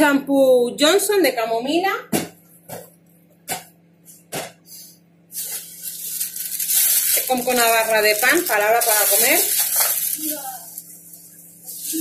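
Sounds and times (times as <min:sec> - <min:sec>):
packaging rustling: 0:05.4 - 0:11.4.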